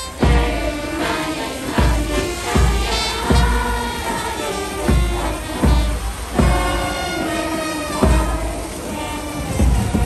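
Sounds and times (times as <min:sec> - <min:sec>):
brass horn chords: 0:00.0 - 0:10.0
bass drum beat: 0:00.2 - 0:00.8, 0:01.8 - 0:03.9.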